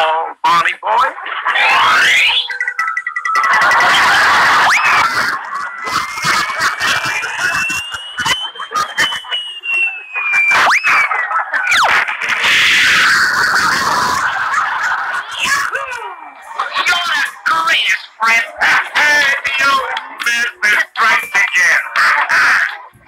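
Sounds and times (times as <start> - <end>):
cartoon music: 1.5 - 17.4
long gliding whistle tone: 7.6 - 11.2.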